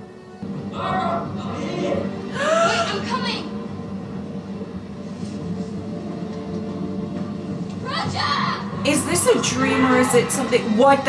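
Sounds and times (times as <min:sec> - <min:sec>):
low steady soundtrack drone: 0:00.0 - 0:11.0.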